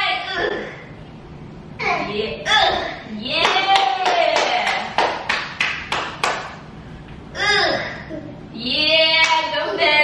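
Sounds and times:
hand clapping in even beat: 3.5 - 6.6.

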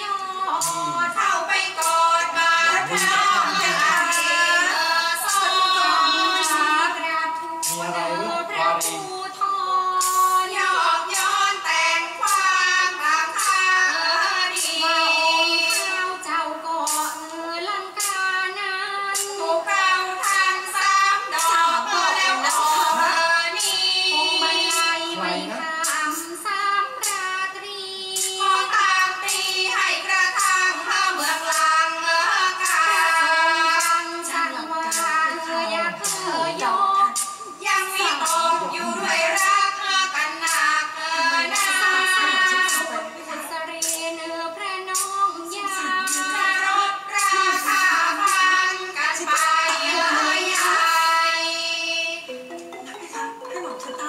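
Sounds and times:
woman singing with long held notes: 0.0 - 54.0
light percussion strikes: 0.6 - 2.0.

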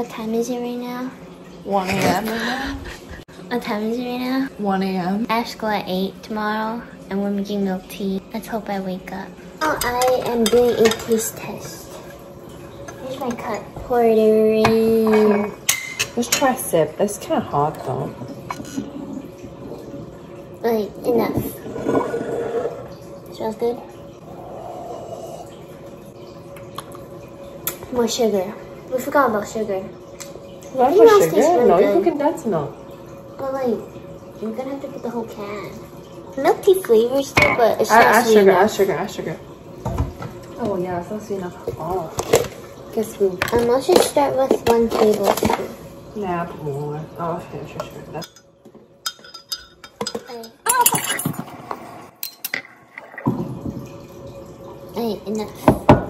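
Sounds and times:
person sipping from a mug: 24.3 - 25.6.

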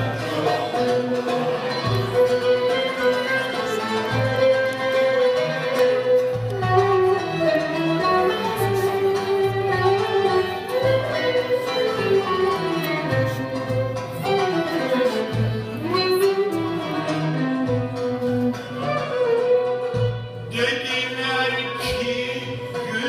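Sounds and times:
live band instrumental music: 0.0 - 23.0.

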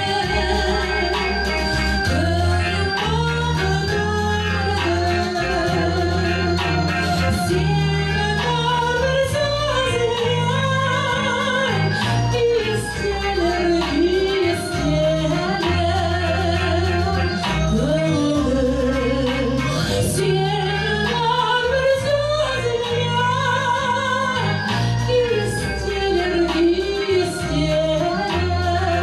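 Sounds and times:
recorded backing track: 0.0 - 29.0
woman singing retro song: 0.0 - 29.0.

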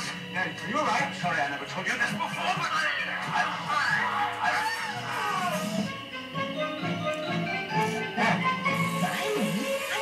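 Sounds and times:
film soundtrack music: 0.0 - 10.0
voice wailing: 3.8 - 5.9.

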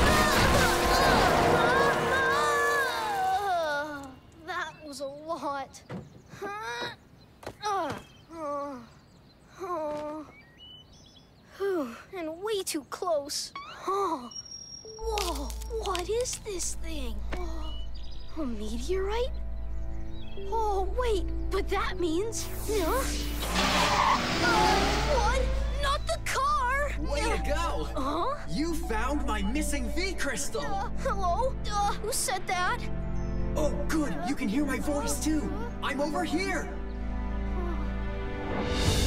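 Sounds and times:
cartoon tyres screeching: 22.6 - 26.7.

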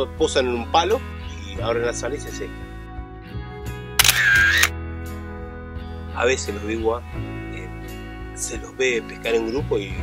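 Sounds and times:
background music: 0.0 - 10.0
camera shutter sound effect: 4.0 - 4.8.

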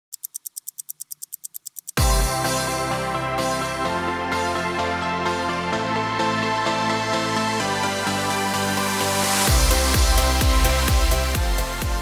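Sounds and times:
fast crisp ticking: 0.1 - 2.0.

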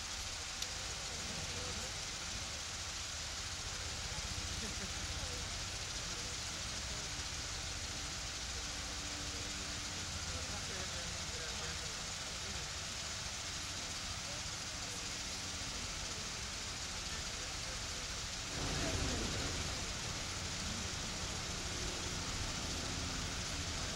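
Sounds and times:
open-air ambience hiss and rumble: 0.0 - 23.9
people talking indistinctly: 0.6 - 23.9.

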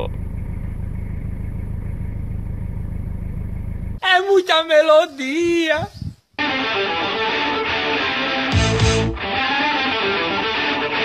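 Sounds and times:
diesel engine idling: 0.0 - 4.0.

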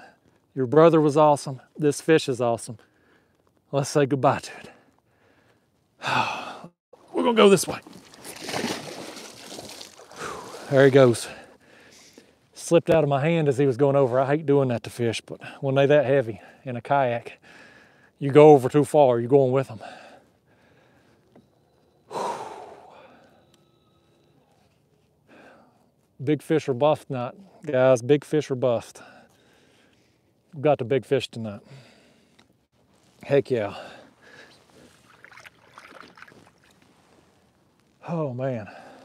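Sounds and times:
man sighing heavily: 6.0 - 6.7, 22.1 - 23.4
water splashing and sloshing: 6.9 - 11.5, 34.7 - 37.3.

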